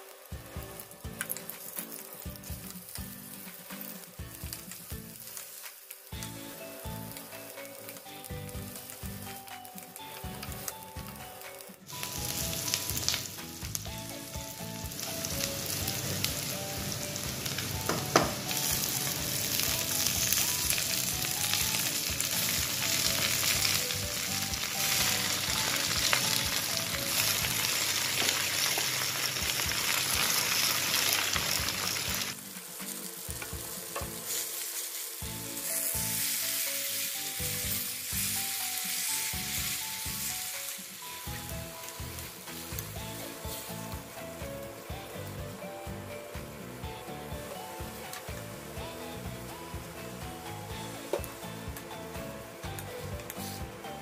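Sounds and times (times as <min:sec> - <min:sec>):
vegetables sizzling in oil: 0:00.0 - 0:54.0.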